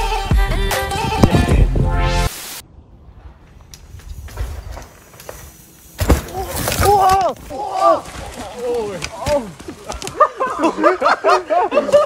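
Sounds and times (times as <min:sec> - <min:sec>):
backing music: 0:00.0 - 0:02.3
low outdoor noise: 0:02.4 - 0:12.0
bikes crashing clatter: 0:03.9 - 0:10.6.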